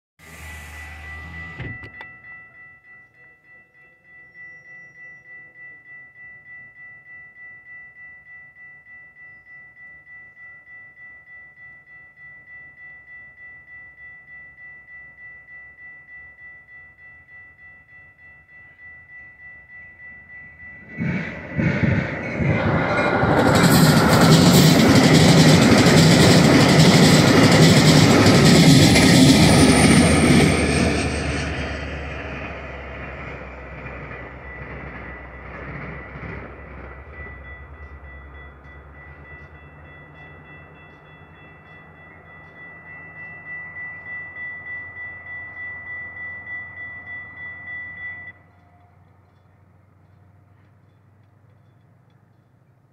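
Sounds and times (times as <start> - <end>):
commuter train passing: 0.2 - 52.9
railroad crossing bell dinging: 0.2 - 52.9.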